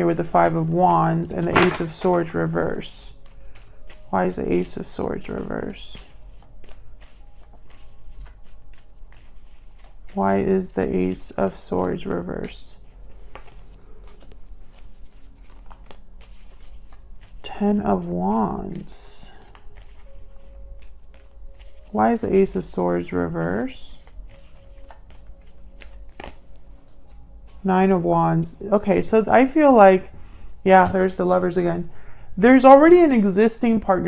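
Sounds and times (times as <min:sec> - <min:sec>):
cards being shuffled: 0:01.3 - 0:27.2.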